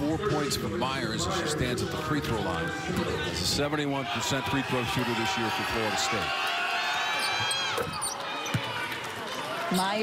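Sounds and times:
arena crowd noise: 0.0s - 10.0s
high squeaks: 7.1s - 8.6s
basketball bouncing on court: 7.4s - 9.0s.

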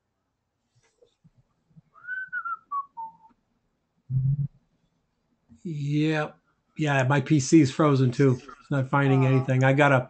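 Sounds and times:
person whistling: 2.0s - 3.3s
brief low hum: 4.1s - 4.5s.

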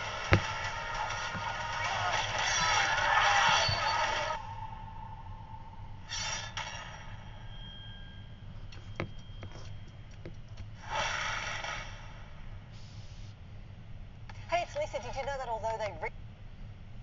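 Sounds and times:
thump: 0.3s - 0.6s
faint lingering tone: 3.6s - 10.1s.

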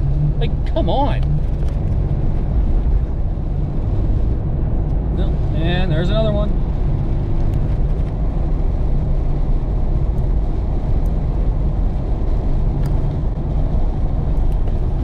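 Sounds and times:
engine and tyre rumble in car: 0.0s - 15.0s.

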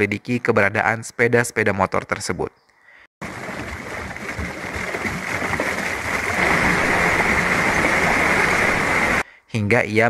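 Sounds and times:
water splashing and pouring: 3.2s - 9.2s.

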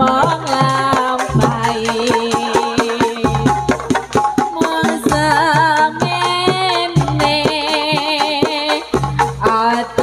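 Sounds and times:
hand drum strokes: 0.0s - 10.0s.

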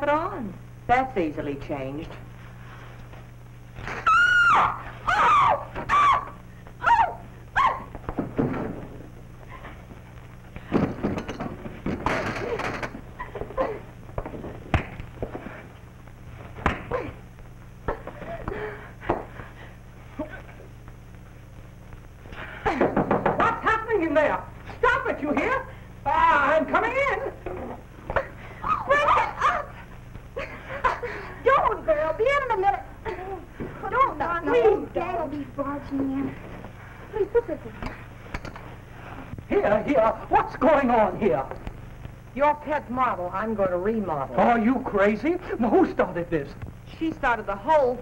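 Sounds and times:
women shrieking: 3.9s - 8.0s, 28.6s - 29.8s.

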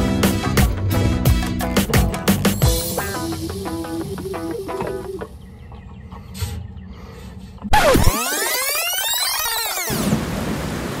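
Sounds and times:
electronic pitch sweeps: 2.6s - 5.3s, 7.7s - 10.1s.

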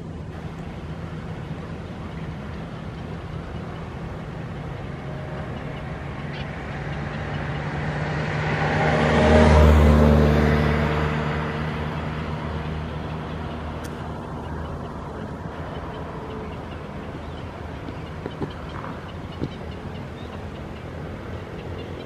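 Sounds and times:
motor vehicle passing: 0.0s - 22.0s.

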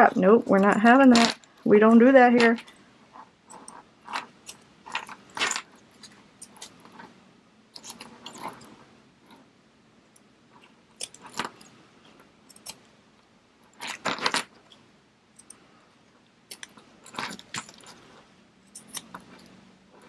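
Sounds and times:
light metallic zipper clinks: 0.0s - 7.1s, 7.7s - 8.8s, 16.6s - 20.0s.

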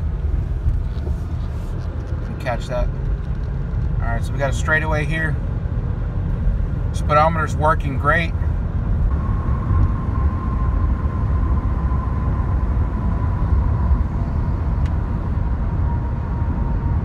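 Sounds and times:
car engine running: 0.0s - 17.0s
road and tyre noise: 0.0s - 17.0s.

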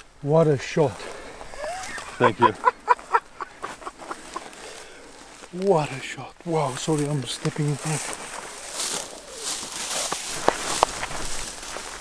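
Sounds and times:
man laughing: 1.5s - 4.6s.

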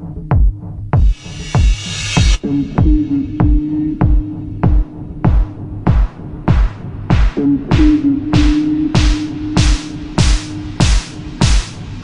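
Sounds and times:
deep kick drum: 0.0s - 12.0s
bright hissing hit: 1.1s - 2.4s.

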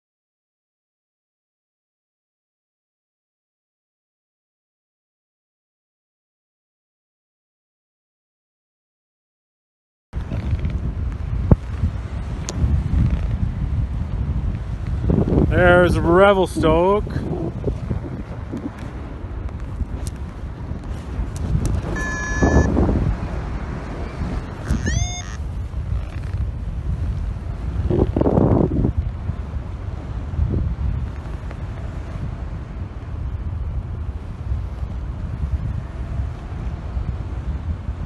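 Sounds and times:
wind buffeting microphone: 10.2s - 38.0s
short steady tone: 21.9s - 22.8s, 24.7s - 25.4s.

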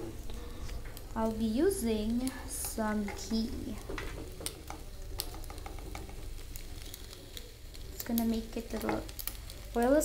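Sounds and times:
faint sizzle: 0.0s - 10.0s
spoon stirring macaroni in pan: 0.0s - 10.0s.

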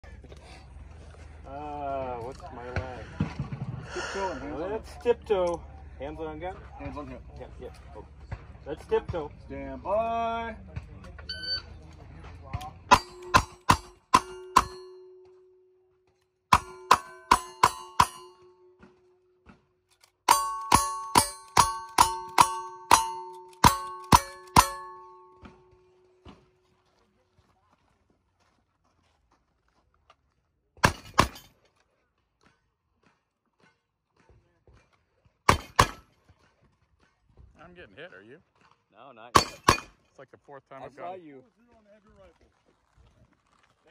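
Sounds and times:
steel targets ringing: 12.9s - 15.6s, 16.5s - 19.0s, 20.3s - 26.0s, 39.4s - 40.0s
gunshots: 30.8s - 31.5s, 35.5s - 36.0s, 39.4s - 39.9s.

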